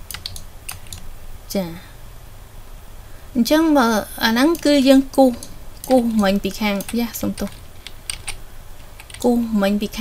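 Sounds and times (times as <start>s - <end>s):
keyboard keystroke clicks: 0.1s - 1.0s.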